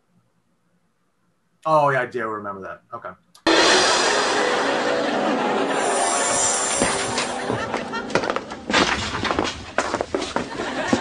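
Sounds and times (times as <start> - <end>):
music with held notes: 3.5 - 9.4.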